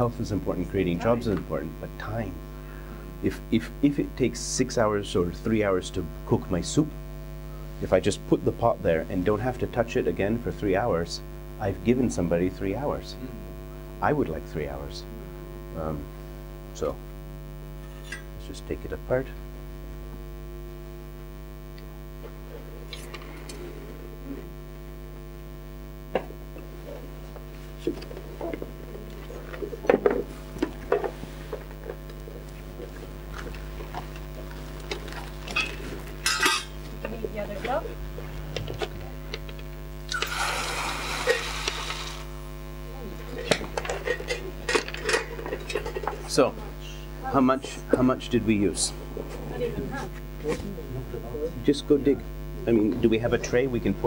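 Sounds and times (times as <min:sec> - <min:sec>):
electrical mains hum: 0:00.0 - 0:54.0
metal stove parts clinking: 0:36.3 - 0:36.8.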